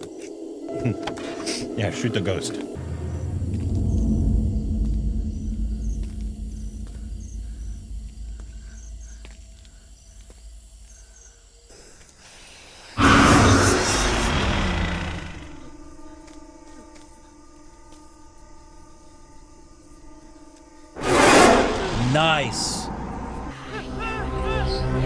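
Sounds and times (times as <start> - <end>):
eerie held tones: 0.6 - 11.4, 13.0 - 21.0
faint regular chirps: 2.6 - 12.4
low rumbling drone: 2.7 - 11.3, 13.0 - 23.8
loud noisy jump-scare blast: 13.0 - 15.6.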